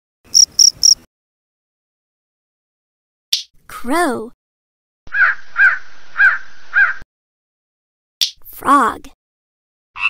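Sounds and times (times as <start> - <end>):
crow cawing: 5.1 - 7.0.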